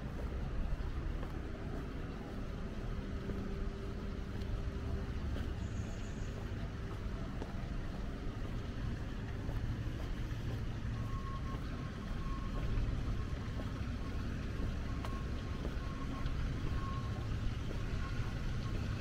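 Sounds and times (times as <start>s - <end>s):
distant city traffic rumble: 0.0s - 19.0s
faint high-pitched beeping: 0.0s - 19.0s.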